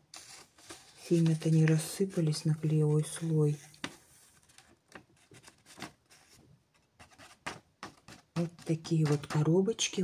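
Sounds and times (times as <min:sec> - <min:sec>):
paper crackles: 0:00.0 - 0:06.4, 0:07.3 - 0:09.6
paper rustling: 0:00.0 - 0:09.7.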